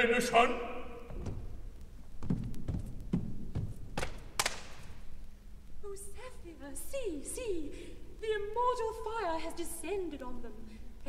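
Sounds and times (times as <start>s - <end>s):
footsteps on a stage floor: 1.0s - 5.3s.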